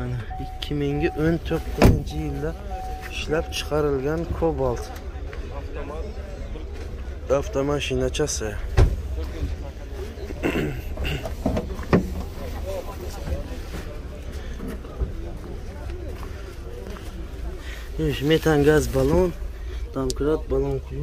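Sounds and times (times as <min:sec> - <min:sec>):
faint background voices: 0:00.0 - 0:21.0.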